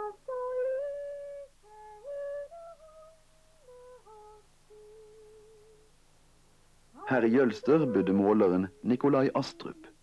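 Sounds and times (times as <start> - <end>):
soft slow background music: 0.0 - 10.0.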